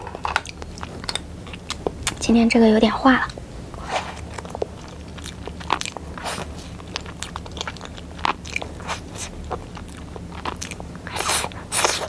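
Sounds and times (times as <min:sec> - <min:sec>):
wet chewing: 0:00.3 - 0:02.2, 0:03.2 - 0:12.0.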